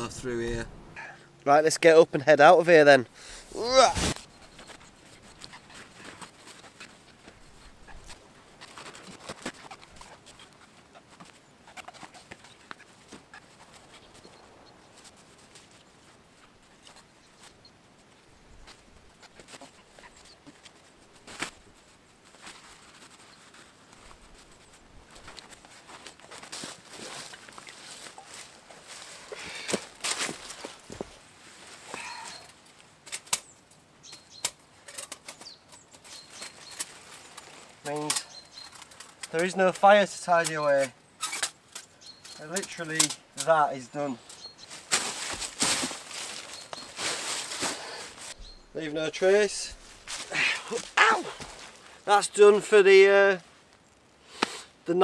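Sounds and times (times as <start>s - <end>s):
footsteps crunching dry leaves: 21.0s - 32.4s, 44.6s - 48.6s, 49.7s - 52.0s.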